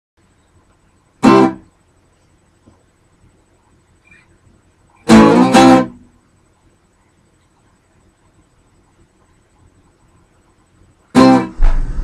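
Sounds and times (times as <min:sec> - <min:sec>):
acoustic guitar chord strums: 0:00.6 - 0:06.8, 0:11.0 - 0:12.0.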